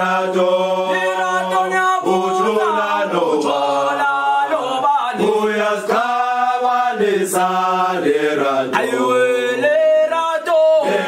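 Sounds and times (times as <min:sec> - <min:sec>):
choir singing a chant: 0:00.0 - 0:11.0.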